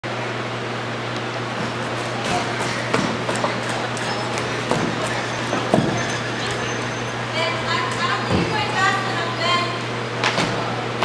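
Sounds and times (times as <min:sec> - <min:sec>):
knocks and taps: 0:01.6 - 0:07.2.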